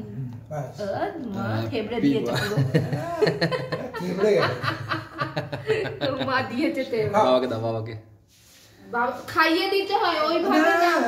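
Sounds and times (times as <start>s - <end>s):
people talking: 0.9s - 4.9s, 5.7s - 7.3s, 8.9s - 11.0s
people laughing: 2.3s - 6.6s.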